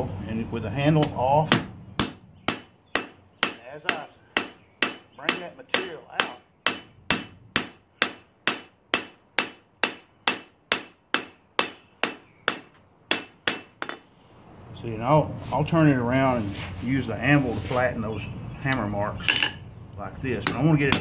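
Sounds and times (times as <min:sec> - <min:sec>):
hammer striking metal on anvil: 0:01.0 - 0:14.0.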